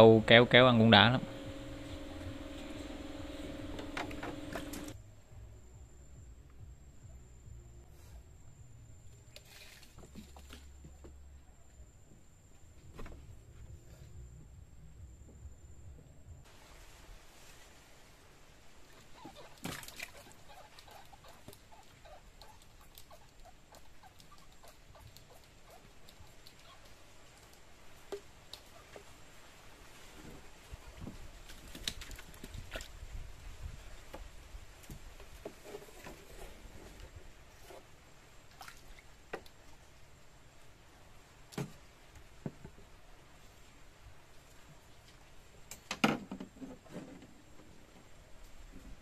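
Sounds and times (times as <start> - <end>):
steady low hum: 0.0 - 9.4, 10.4 - 16.5
soft river background: 0.0 - 12.5, 16.3 - 49.0
tiny squeaks: 19.0 - 25.8.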